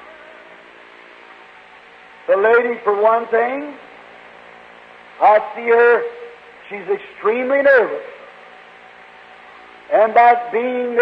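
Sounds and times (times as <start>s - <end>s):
recording hiss and hum: 0.0s - 11.0s
man preaching: 2.3s - 3.8s, 5.2s - 8.2s, 9.9s - 11.0s.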